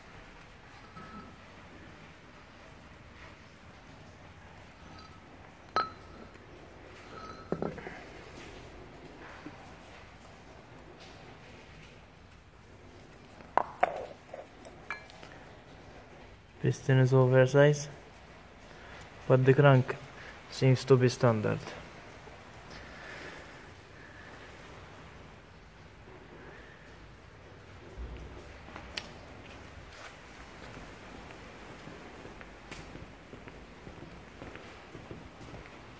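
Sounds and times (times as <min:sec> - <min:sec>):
handling rusty metal parts: 0:07.0 - 0:08.2, 0:13.6 - 0:15.4.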